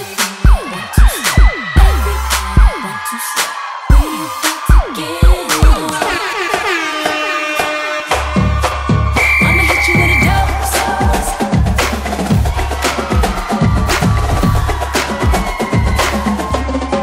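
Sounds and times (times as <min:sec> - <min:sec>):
hip hop music: 0:00.0 - 0:17.0.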